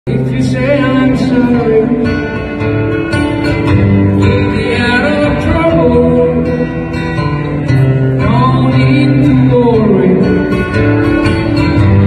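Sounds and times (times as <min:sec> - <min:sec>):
man singing into microphone: 0:00.1 - 0:02.4, 0:04.2 - 0:06.8, 0:08.2 - 0:10.7
acoustic guitar strumming: 0:00.1 - 0:12.0.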